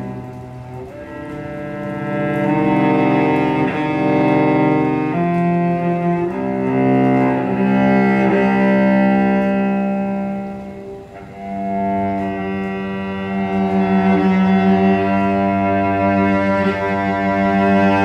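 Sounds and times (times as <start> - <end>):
cello bowed low drone: 0.0 - 18.0.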